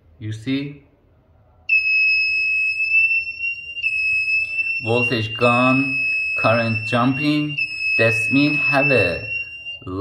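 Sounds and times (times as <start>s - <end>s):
high-pitched continuous alarm beep: 1.7s - 10.0s.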